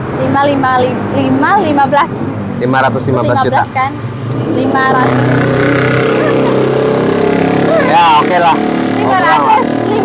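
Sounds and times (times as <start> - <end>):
vehicle engine humming: 0.0 - 10.0.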